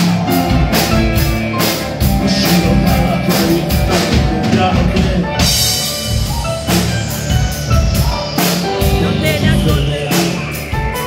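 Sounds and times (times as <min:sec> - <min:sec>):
drum kit beat: 0:00.0 - 0:11.0
rock band playing live: 0:00.0 - 0:11.0.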